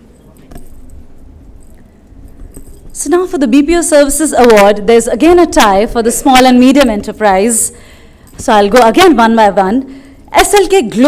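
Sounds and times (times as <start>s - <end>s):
low hall noise: 0.0s - 11.0s
faint clicks and clinks: 0.1s - 3.5s.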